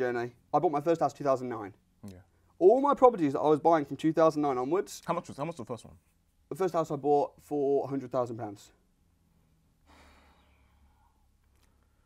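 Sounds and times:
faint exhaled breath: 9.8 - 12.0.

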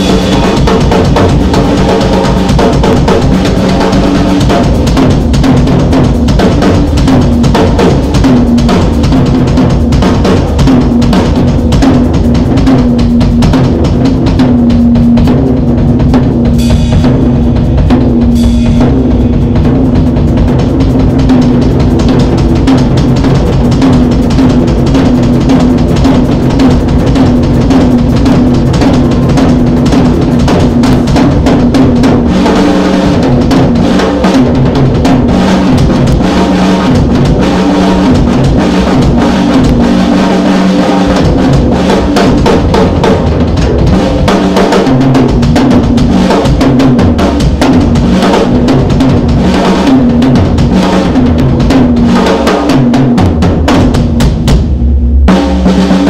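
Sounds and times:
drum kit playing solo: 0.0 - 56.0.

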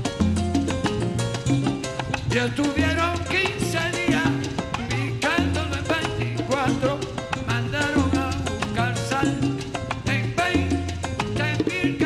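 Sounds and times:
salsa band playing: 0.0 - 12.0.

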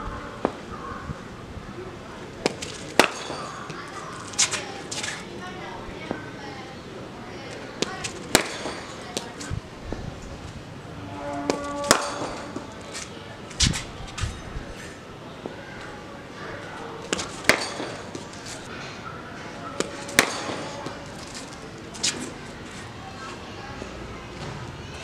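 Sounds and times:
faint background voices: 0.0 - 25.0
bat striking ball: 2.4 - 3.6, 8.3 - 9.3, 11.5 - 12.7, 17.1 - 18.2, 19.8 - 21.0.

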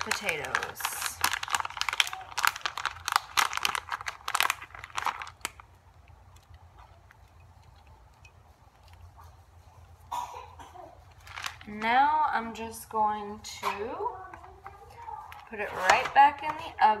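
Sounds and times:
plastic package crinkling: 0.0 - 9.0, 11.0 - 12.0.

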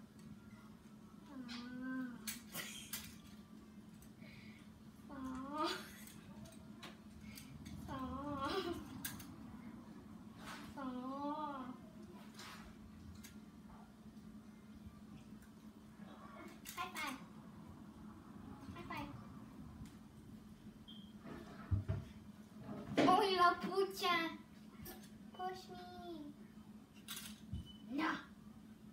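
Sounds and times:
faint steady hum: 0.0 - 28.9
child cooing: 1.3 - 2.3, 5.1 - 6.0, 7.9 - 8.9.

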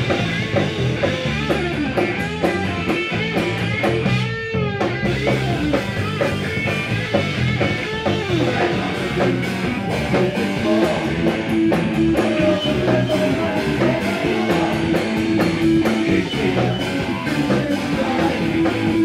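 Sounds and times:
bass guitar: 0.0 - 19.0
drum kit with cymbal hits: 0.0 - 19.0
electric guitar: 0.0 - 19.0.

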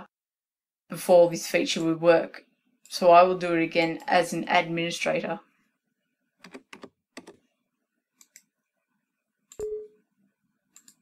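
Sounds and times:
keyboard keystrokes: 6.4 - 7.4.

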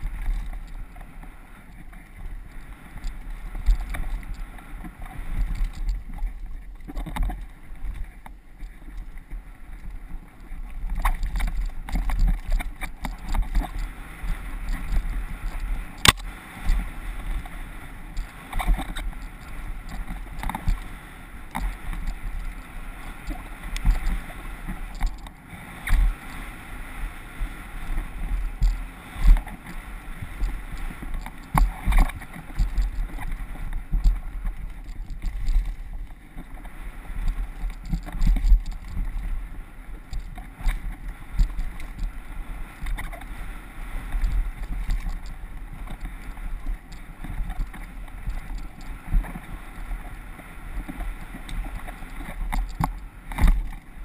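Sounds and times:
bike tyres and frame rattling: 0.0 - 26.6, 27.2 - 54.0.

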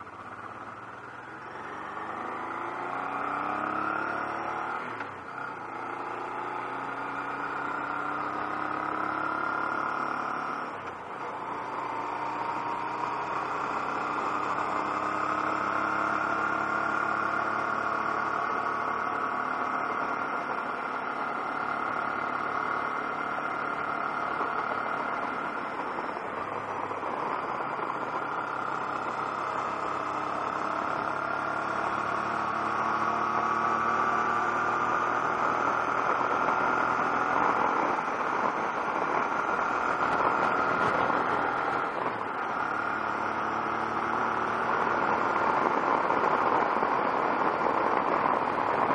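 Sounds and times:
motorcycle engine running: 0.0 - 48.9
wind and road noise: 0.0 - 48.9.

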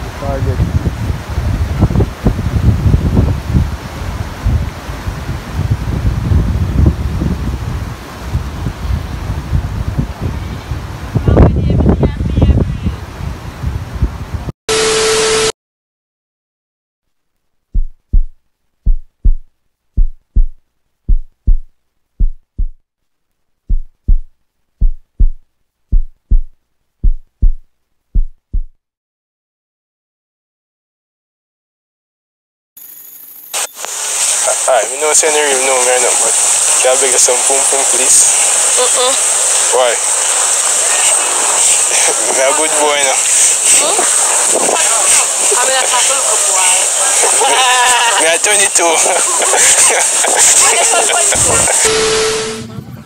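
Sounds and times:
microphone handling noise: 0.0 - 13.0, 17.7 - 22.8, 23.7 - 28.8
wind rumbling on microphone: 0.0 - 14.5, 43.1 - 47.3, 51.2 - 51.9, 52.6 - 53.0
short steady beep with hiss: 14.7 - 15.5, 33.5 - 34.4, 51.8 - 52.7
heartbeat double thumps: 17.7 - 22.8, 23.7 - 28.8
muffled voices: 34.4 - 53.0.

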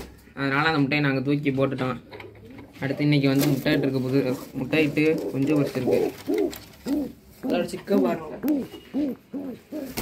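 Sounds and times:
pigeons cooing: 3.6 - 10.0.

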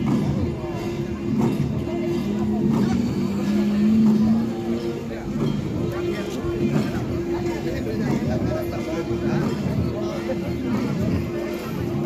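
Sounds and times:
many voices mingling: 0.0 - 12.0.

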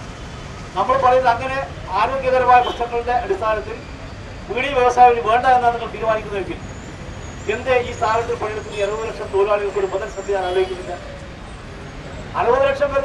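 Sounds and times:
low street noise: 0.0 - 13.0.

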